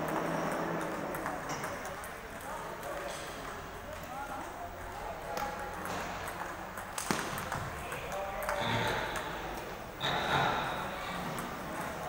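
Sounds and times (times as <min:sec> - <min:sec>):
table tennis ball clicking: 0:00.0 - 0:03.2
murmur of voices: 0:00.6 - 0:12.0.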